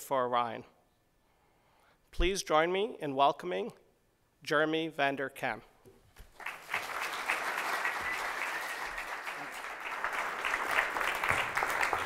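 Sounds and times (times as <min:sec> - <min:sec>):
audience applauding: 0:06.3 - 0:12.0.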